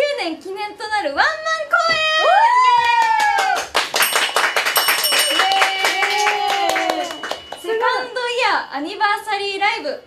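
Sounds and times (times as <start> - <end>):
women clapping rapidly: 2.7 - 7.9.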